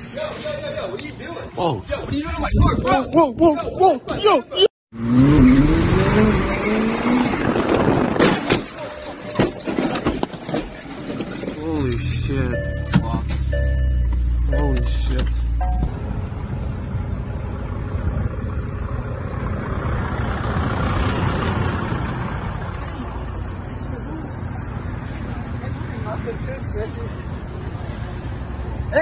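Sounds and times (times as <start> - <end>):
vehicles driving past: 5.0 - 29.0.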